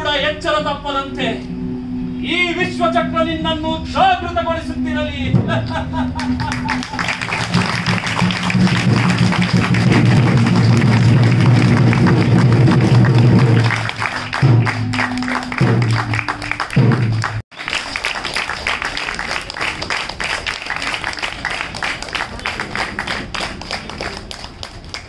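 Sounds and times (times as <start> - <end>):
held low music chords: 0.0 - 17.4
audience applause: 6.2 - 25.0.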